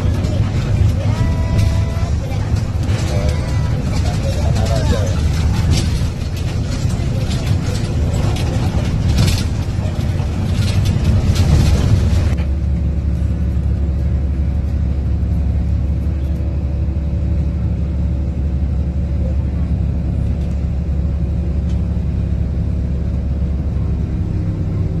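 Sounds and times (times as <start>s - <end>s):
low engine hum: 0.0s - 25.0s
road noise inside vehicle: 0.0s - 25.0s.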